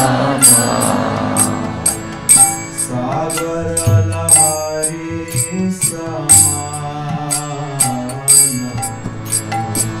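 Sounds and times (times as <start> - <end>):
man singing held notes: 0.0 - 2.0
metallic cymbal strikes: 0.0 - 10.0
steady drone: 0.0 - 10.0.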